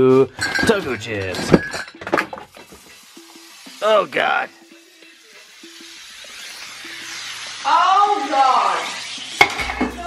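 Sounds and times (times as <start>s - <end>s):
glass bottles clattering and clinking: 0.1s - 5.0s, 9.4s - 10.0s
spilled soda fizzing: 0.2s - 10.0s.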